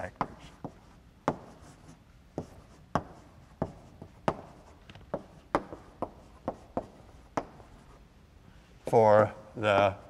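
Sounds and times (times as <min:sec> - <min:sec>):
chalk tapping and scratching: 0:00.0 - 0:08.1.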